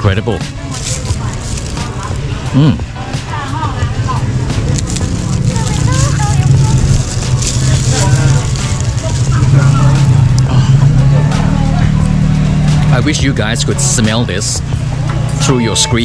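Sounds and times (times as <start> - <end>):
people talking: 0.0 - 16.0
vehicle engine idling: 0.5 - 16.0.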